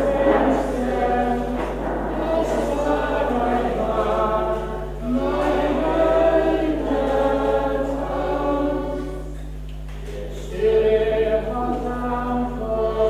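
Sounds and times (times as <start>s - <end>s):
men singing together: 0.0s - 9.4s, 10.4s - 13.0s.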